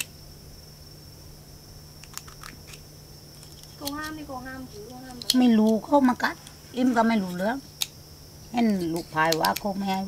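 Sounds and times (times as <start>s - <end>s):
scissors cracking nut shells: 2.0s - 2.8s, 3.4s - 6.6s, 7.2s - 10.0s.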